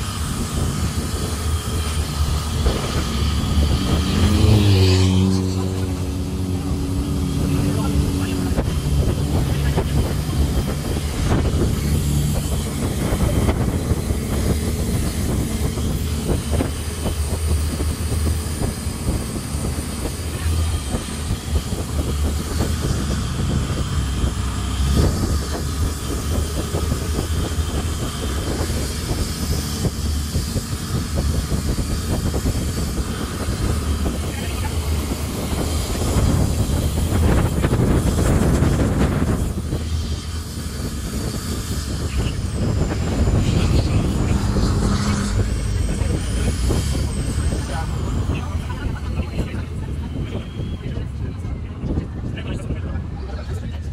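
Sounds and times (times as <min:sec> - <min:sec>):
water noise: 0:00.0 - 0:52.8
boat engine running: 0:00.0 - 0:53.9
wind: 0:00.0 - 0:53.9.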